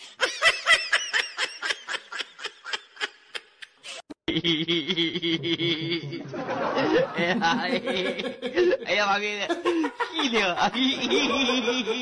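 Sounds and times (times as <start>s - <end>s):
person laughing in high-pitched bursts: 0.1s - 8.9s, 9.5s - 12.0s.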